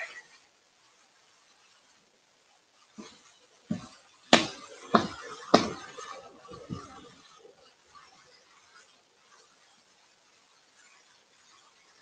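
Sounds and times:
stamp knocking on wooden board: 3.7s - 5.8s.

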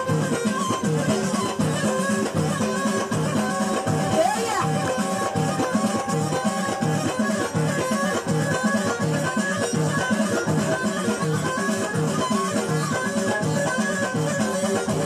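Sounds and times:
live folk music: 0.0s - 15.0s.

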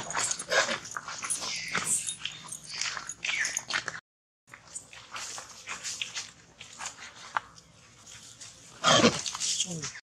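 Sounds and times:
rustles in dry leaves: 4.8s - 10.0s.

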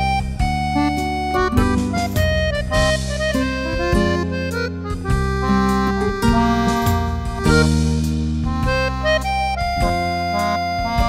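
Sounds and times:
keyboard playing reedy melody: 0.0s - 11.0s.

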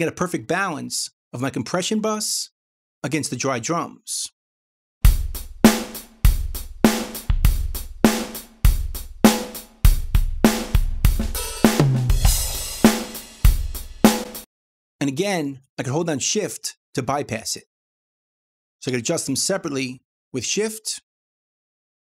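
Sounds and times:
drum-kit groove: 5.0s - 14.5s.

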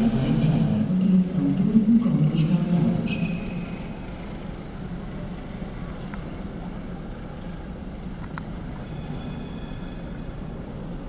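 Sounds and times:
diesel train engine drone: 0.0s - 11.0s.

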